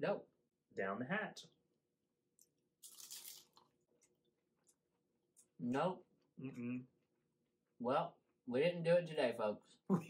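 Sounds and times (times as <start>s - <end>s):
crunchy bite into fried food: 2.8s - 3.7s.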